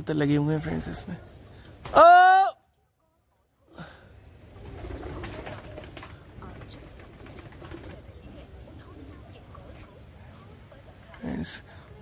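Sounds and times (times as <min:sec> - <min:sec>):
pigeons cooing: 0:03.8 - 0:10.6.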